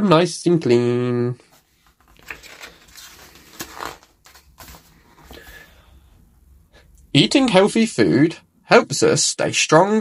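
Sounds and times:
paper page turning: 1.5 - 5.5.

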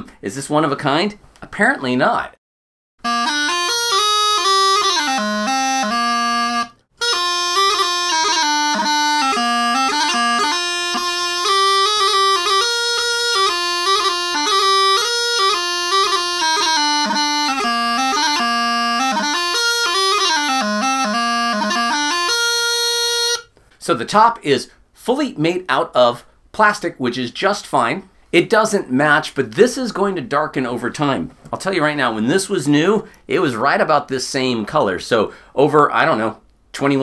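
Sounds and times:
practice chanter bagpipe tune: 3.0 - 23.5.

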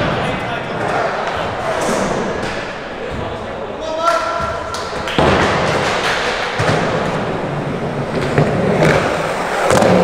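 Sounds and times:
skateboard wheels rolling: 5.2 - 10.0.

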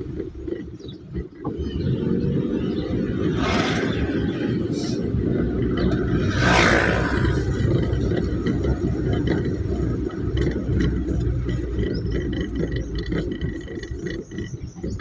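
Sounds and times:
passing vehicle rush: 0.0 - 15.0
vehicle engine and road rumble: 0.0 - 15.0.

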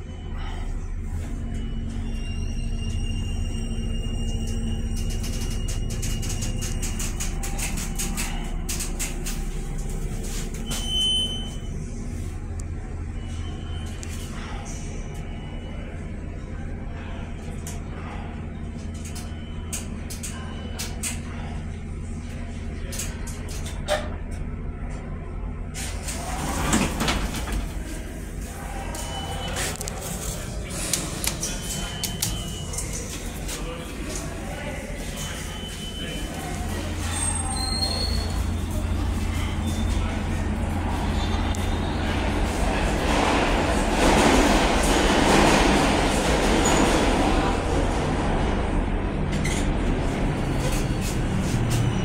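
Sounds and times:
elevator machinery hum: 0.0 - 52.0
subway train rumbling: 0.0 - 52.0
steel elevator doors sliding open: 1.3 - 12.2, 25.8 - 52.0.

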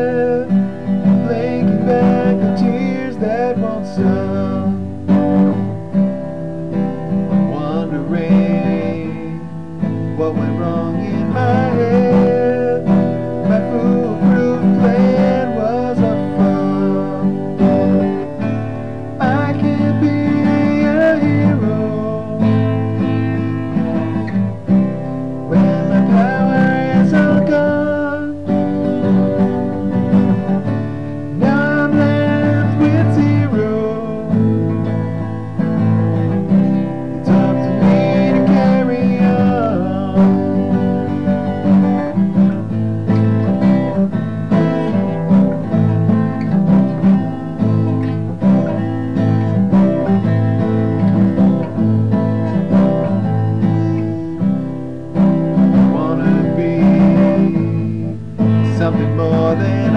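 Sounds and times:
man singing: 0.0 - 6.1, 6.7 - 59.9
acoustic guitar strumming: 0.0 - 59.9.

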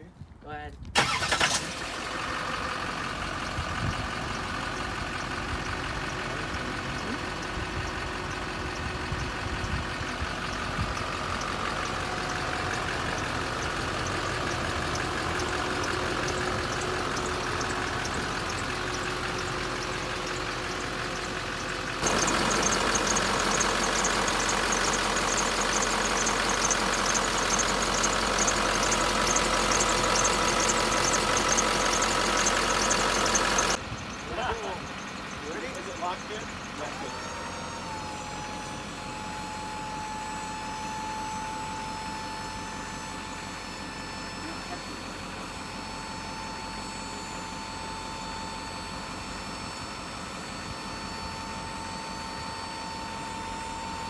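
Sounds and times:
truck engine cranking and idling: 0.0 - 54.0
fast fine ticking: 10.4 - 36.4.

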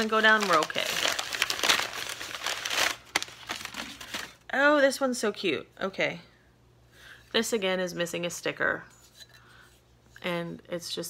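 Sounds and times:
wrapping paper crumpling: 0.0 - 4.4.

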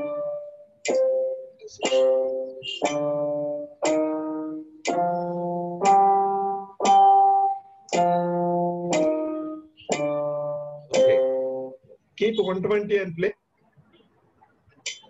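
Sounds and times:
electronic keyboard chords: 0.0 - 12.4.

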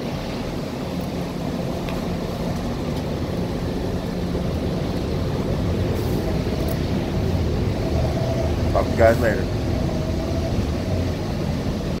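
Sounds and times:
bus engine and road noise: 0.0 - 12.0.

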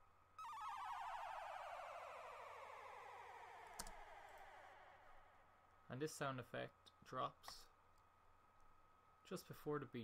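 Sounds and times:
downward-sweeping warbling tone: 0.4 - 5.4.

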